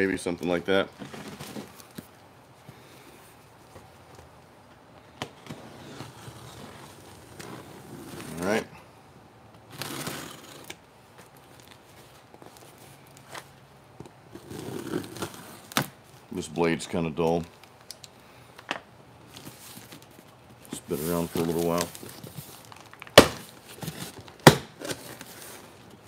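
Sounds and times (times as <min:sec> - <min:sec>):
cardboard rustling: 0:00.9 - 0:02.2, 0:19.3 - 0:26.0
box cutter slitting tape: 0:09.7 - 0:10.8, 0:14.4 - 0:15.9.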